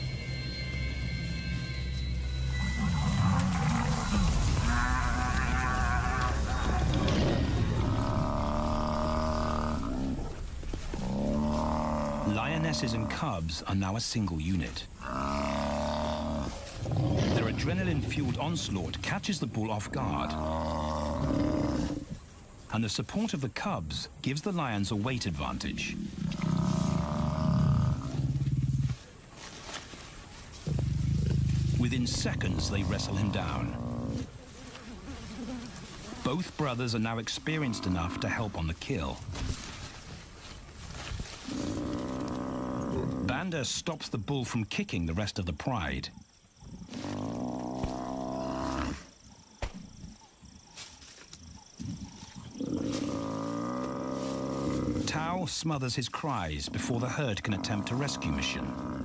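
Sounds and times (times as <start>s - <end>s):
buffalo bellowing in distress: 2.5s - 10.4s
lion growling: 2.6s - 13.5s, 15.0s - 22.2s, 25.6s - 29.2s, 30.6s - 36.6s, 41.4s - 43.4s, 46.2s - 49.1s, 52.3s - 55.2s, 56.5s - 59.0s.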